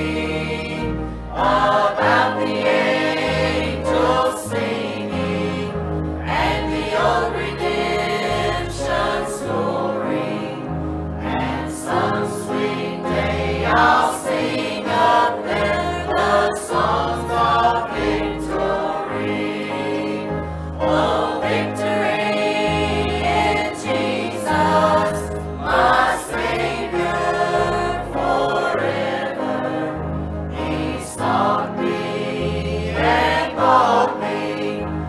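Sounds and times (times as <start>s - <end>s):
choir singing a hymn: 0.0s - 35.0s
instrumental accompaniment: 0.0s - 35.0s.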